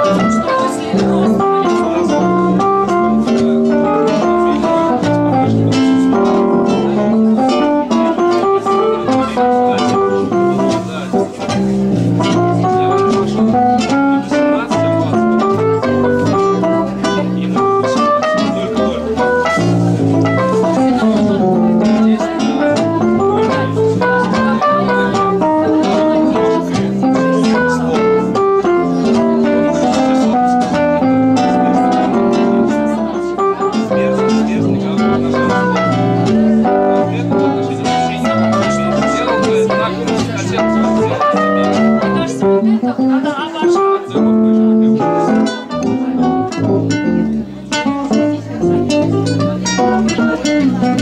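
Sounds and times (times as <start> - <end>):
electric keyboard chords: 0.0 - 51.0
nylon-string guitar melody: 0.0 - 51.0
walking double bass: 0.0 - 51.0.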